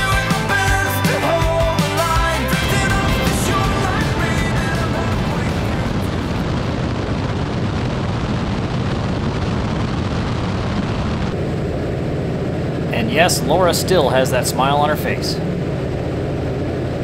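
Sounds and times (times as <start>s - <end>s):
biplane engine in flight: 0.0s - 17.0s
wind rush on microphone: 2.6s - 14.5s.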